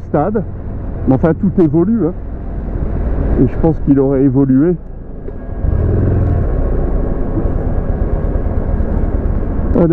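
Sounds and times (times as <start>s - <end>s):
motorcycle engine rumbling: 0.0s - 9.9s
wind and road noise: 0.0s - 9.9s.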